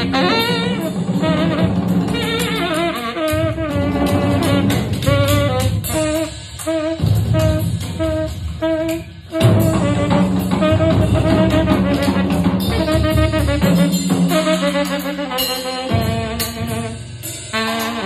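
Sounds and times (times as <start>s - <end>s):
bass: 0.0s - 18.0s
drums: 0.0s - 18.0s
tenor saxophone: 0.0s - 18.0s.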